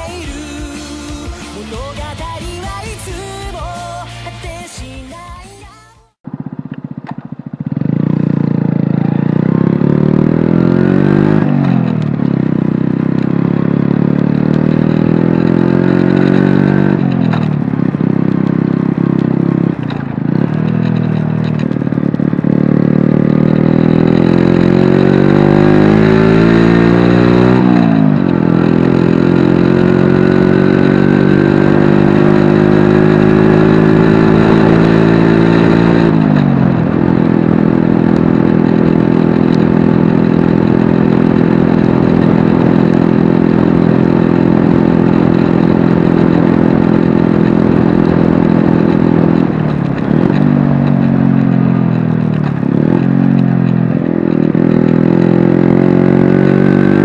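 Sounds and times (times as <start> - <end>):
motorcycle engine accelerating: 0.0 - 4.9, 6.1 - 57.0.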